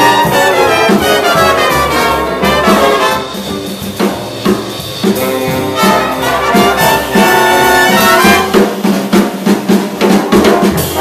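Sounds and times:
big band horns holding chord: 0:00.0 - 0:03.7, 0:05.0 - 0:08.7
short ensemble stabs: 0:00.0 - 0:09.0
snare and kick drum hits: 0:00.0 - 0:11.0.

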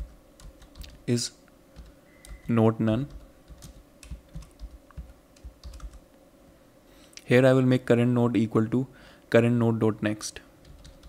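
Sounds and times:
computer keyboard typing: 0:00.0 - 0:01.0, 0:01.8 - 0:06.0, 0:10.6 - 0:11.0.

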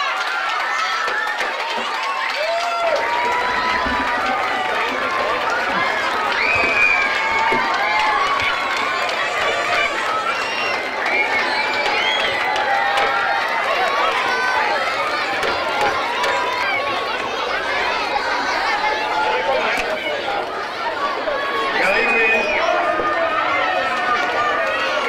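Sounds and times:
crowd cheering and shouting: 0:00.0 - 0:25.0
whoops: 0:00.6 - 0:04.6, 0:05.5 - 0:08.8.

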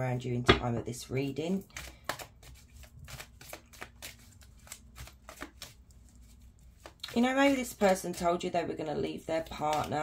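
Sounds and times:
cards being shuffled: 0:01.7 - 0:08.3, 0:09.3 - 0:10.0.

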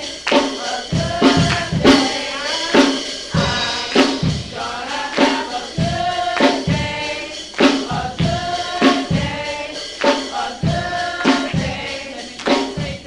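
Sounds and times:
drum and percussion beat: 0:00.0 - 0:13.0
youth choir singing gospel: 0:00.0 - 0:13.0.

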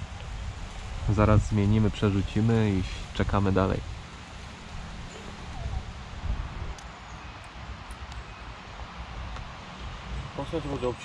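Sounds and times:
steady hiss: 0:00.0 - 0:11.0
wind buffeting microphone: 0:00.0 - 0:11.0.

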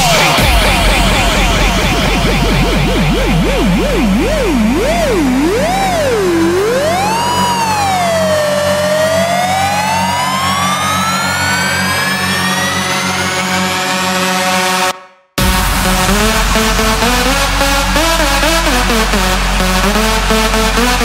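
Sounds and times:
low synth drone: 0:00.0 - 0:21.0
wobbling siren-like synth: 0:00.4 - 0:21.0.

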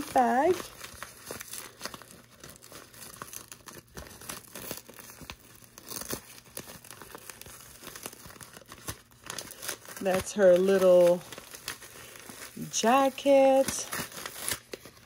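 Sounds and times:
plastic bag crinkling and rustling: 0:00.0 - 0:15.0.

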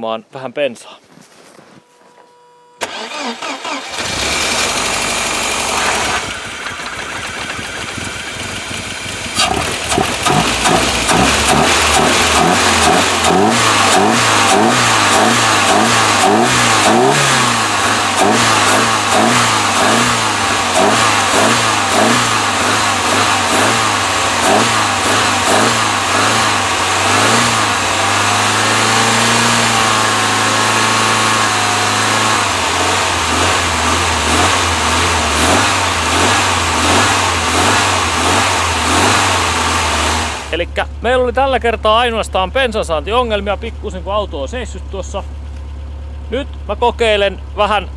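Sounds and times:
engine revving: 0:02.8 - 0:40.6
car engine starting and running: 0:02.8 - 0:47.9.

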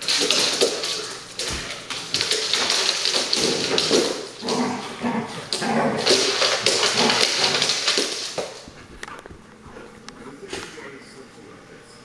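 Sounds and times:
dog claws scrabbling on hard floor: 0:00.0 - 0:10.7.

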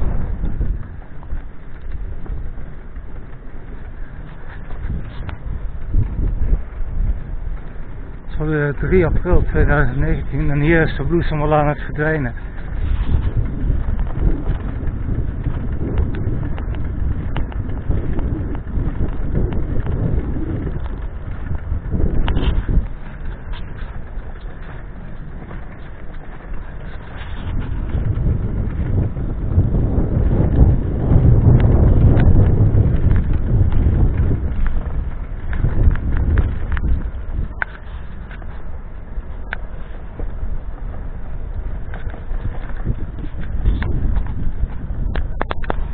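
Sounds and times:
wind buffeting microphone: 0:00.0 - 0:45.9.

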